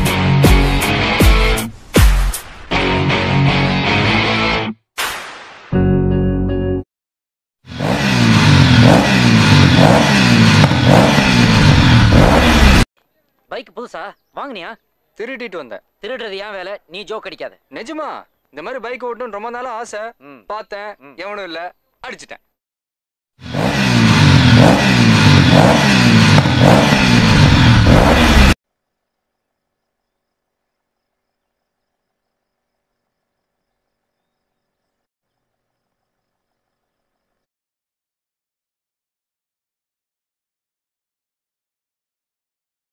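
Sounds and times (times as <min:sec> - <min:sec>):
motorcycle engine revving: 0:07.7 - 0:12.9, 0:23.4 - 0:28.6.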